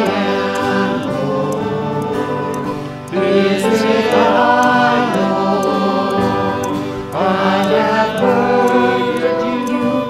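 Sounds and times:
voices singing a slow hymn: 0:00.0 - 0:10.0.

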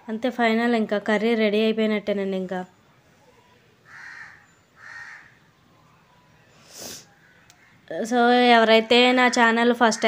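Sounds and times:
bird calling: 0:03.3 - 0:07.9.

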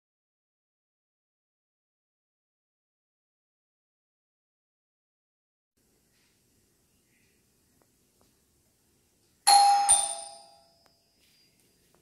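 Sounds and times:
doorbell ding-dong chime: 0:09.5 - 0:11.1.

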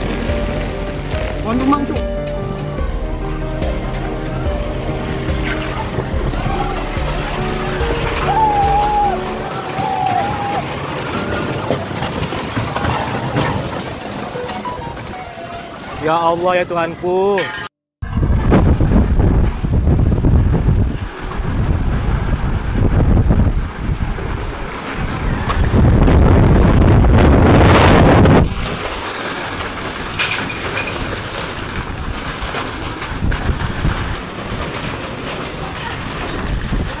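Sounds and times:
storm wind buffeting microphone: 0:02.4 - 0:14.4, 0:18.0 - 0:37.0.

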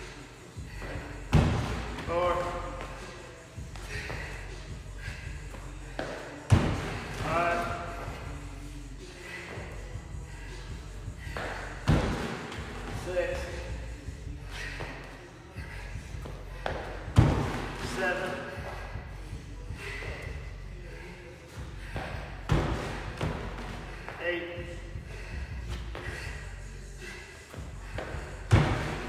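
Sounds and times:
heavy thuds of feet landing: 0:00.7 - 0:02.5, 0:05.9 - 0:08.4, 0:11.0 - 0:13.5, 0:16.0 - 0:19.1, 0:21.6 - 0:24.2, 0:27.6 - 0:29.0.

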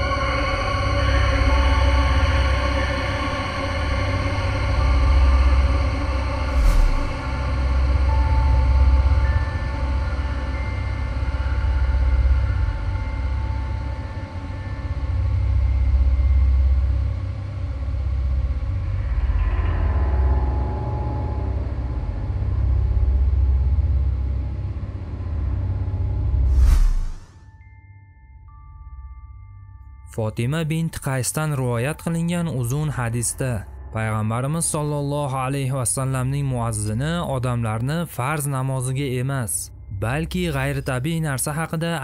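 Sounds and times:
eerie soundtrack music: 0:00.0 - 0:42.0
sharp swoosh: 0:06.4 - 0:07.5, 0:26.4 - 0:27.4
whoosh: 0:06.4 - 0:07.7, 0:26.4 - 0:27.5.

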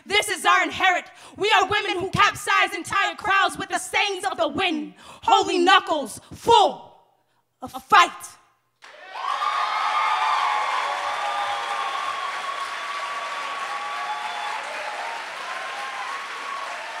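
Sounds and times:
audience applause: 0:08.8 - 0:17.0.

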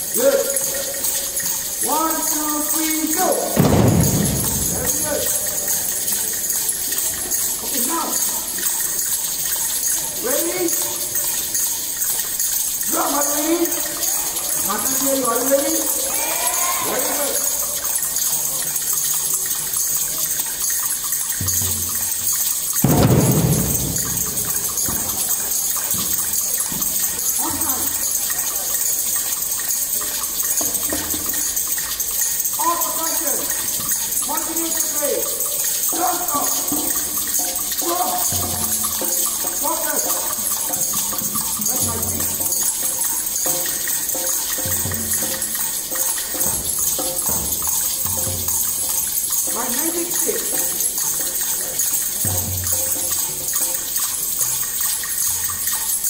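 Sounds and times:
people talking: 0:00.0 - 0:11.4, 0:12.8 - 0:20.6, 0:22.9 - 0:31.5, 0:32.5 - 0:48.8, 0:49.4 - 0:52.5
hand percussion hiss: 0:00.0 - 0:56.0.

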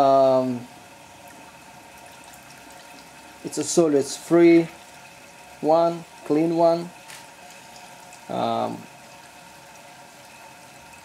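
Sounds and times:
faint watery hiss: 0:05.6 - 0:08.9.

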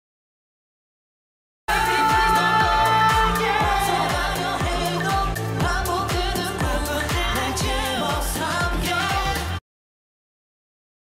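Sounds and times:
electronic dance beat and bass: 0:01.7 - 0:09.6
man singing: 0:01.7 - 0:09.6.

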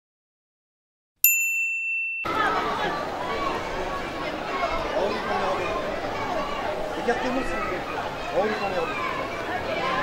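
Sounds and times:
bright electronic ding: 0:01.2 - 0:02.3.

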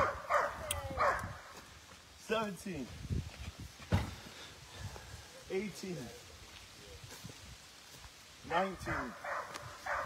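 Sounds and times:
body thudding on grass: 0:03.8 - 0:04.3
sharp thump: 0:03.9 - 0:04.2.

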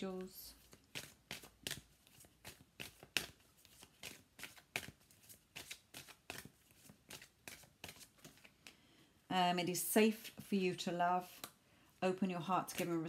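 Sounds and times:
cards being shuffled: 0:00.1 - 0:08.8, 0:12.6 - 0:13.0.

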